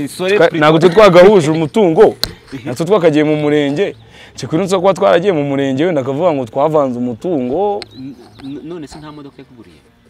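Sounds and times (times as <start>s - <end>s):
bird calling: 0.8s - 4.8s, 7.4s - 9.9s.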